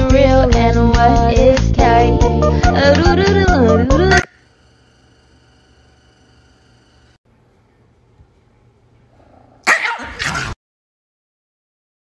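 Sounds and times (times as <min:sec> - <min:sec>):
small dog barking: 0:09.6 - 0:10.5.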